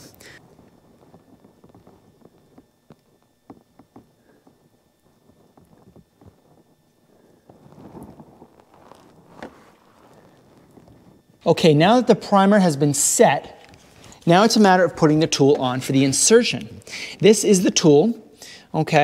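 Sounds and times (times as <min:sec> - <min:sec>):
short rustles: 0:04.2 - 0:11.4.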